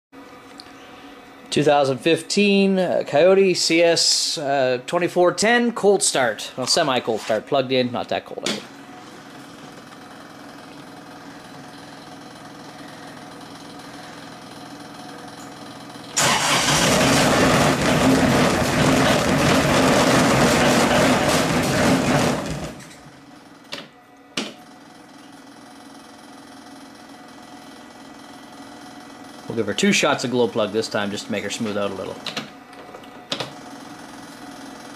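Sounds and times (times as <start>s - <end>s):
tractor diesel engine running: 9.3s - 23.1s.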